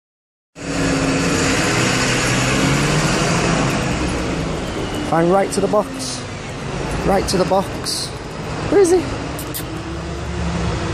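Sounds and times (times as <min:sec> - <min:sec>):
vehicle engine running: 0:00.6 - 0:10.9.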